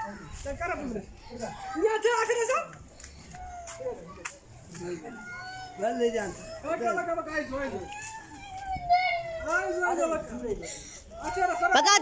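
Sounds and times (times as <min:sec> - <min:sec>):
child wailing: 0:05.1 - 0:10.3.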